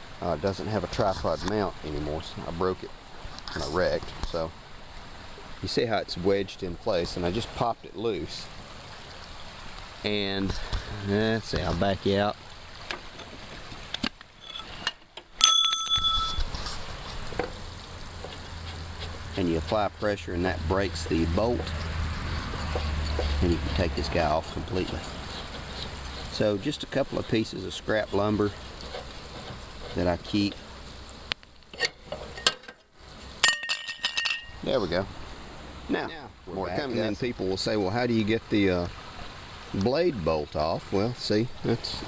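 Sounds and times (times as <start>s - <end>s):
faint crackling rustle: 0.9s - 5.6s, 15.9s - 33.4s
metal-on-metal clink: 14.4s - 16.6s, 31.8s - 32.8s, 33.4s - 34.6s.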